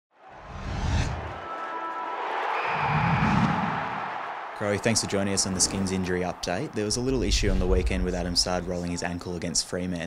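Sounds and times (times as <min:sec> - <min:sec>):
dense rushing swell: 0:00.4 - 0:01.4, 0:06.7 - 0:08.7
deep bass rumble: 0:07.1 - 0:08.7.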